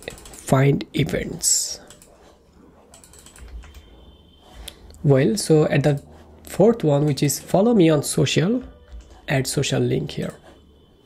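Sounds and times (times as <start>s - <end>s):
keyboard typing: 0.0s - 5.0s, 8.6s - 9.3s.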